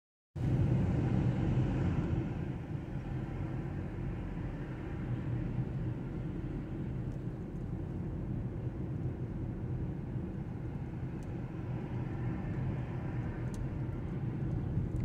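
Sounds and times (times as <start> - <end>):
car engine and tyre rumble: 0.4 - 15.0.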